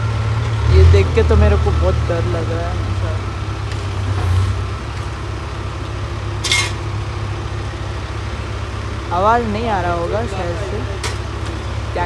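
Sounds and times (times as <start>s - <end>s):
diesel engine rumbling: 0.0s - 12.0s.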